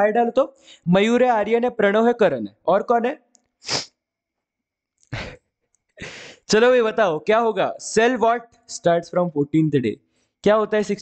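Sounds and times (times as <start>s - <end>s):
man sneezing: 3.6s - 4.0s.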